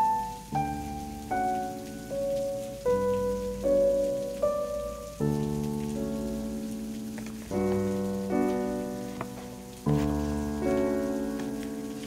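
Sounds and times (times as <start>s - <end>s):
slow soft piano music: 0.0s - 12.0s.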